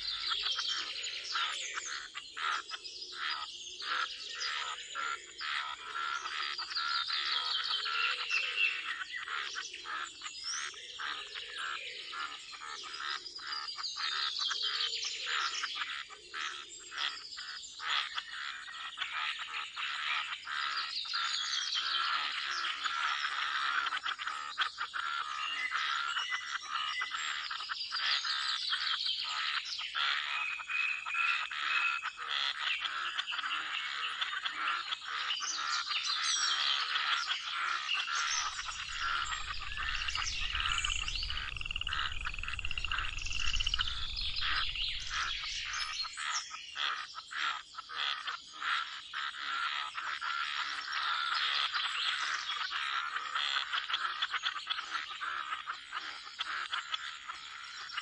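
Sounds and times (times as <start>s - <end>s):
birds chirping: 0.0s - 53.2s
frogs croaking: 0.0s - 58.0s
low rumble: 38.5s - 46.0s.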